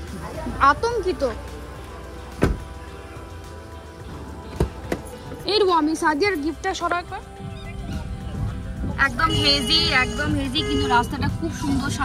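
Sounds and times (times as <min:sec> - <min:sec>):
car door shutting: 0:02.3 - 0:02.8, 0:04.1 - 0:05.2.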